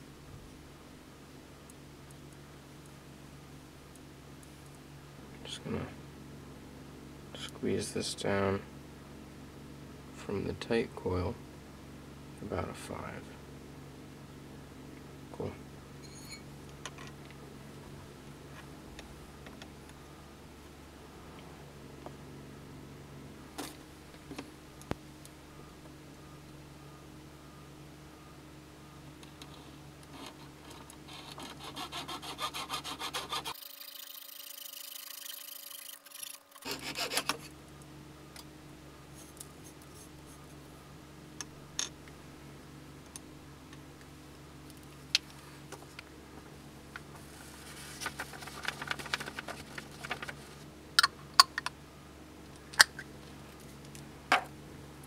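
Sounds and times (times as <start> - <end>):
saw cutting wire: 30.1 - 37.5.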